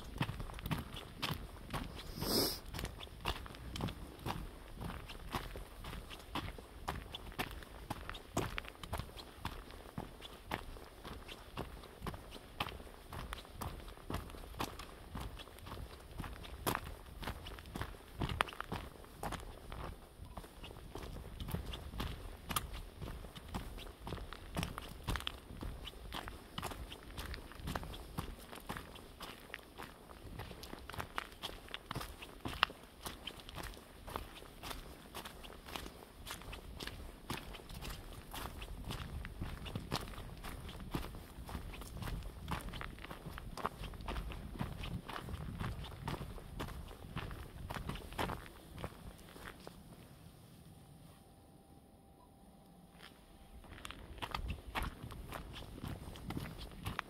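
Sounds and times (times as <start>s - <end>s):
footsteps on gravel and dry leaves: 0.0s - 50.2s, 52.9s - 57.0s.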